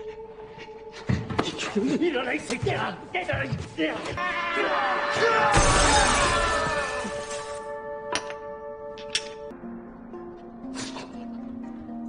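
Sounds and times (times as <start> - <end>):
glass pane shattering: 5.5 - 7.6.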